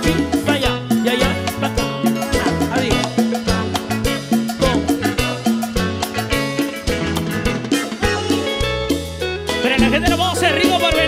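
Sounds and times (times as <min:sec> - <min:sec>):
bass line: 0:00.0 - 0:11.0
drum kit beat: 0:00.0 - 0:11.0
live cumbia band playing: 0:00.0 - 0:11.0.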